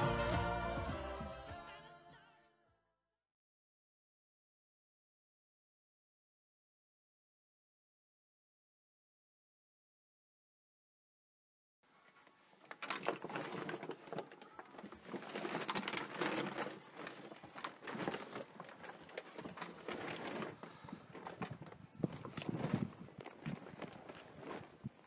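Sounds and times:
footsteps: 0:12.0 - 0:25.0.

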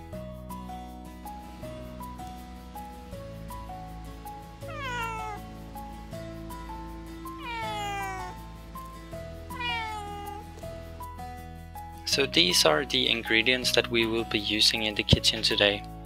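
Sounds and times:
background music: 0:00.0 - 0:16.0
cat meowing: 0:04.6 - 0:05.5, 0:07.3 - 0:08.5, 0:09.5 - 0:10.6.

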